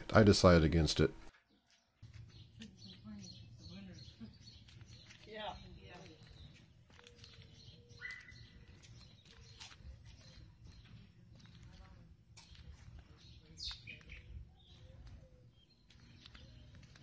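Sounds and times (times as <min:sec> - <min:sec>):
bird chirps: 0:01.3 - 0:11.8, 0:12.4 - 0:17.0.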